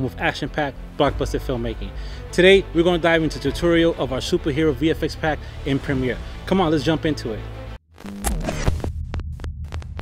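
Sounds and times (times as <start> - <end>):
deep throbbing bass hum: 7.4 - 10.0
glitchy clicks and stutters: 7.9 - 10.0.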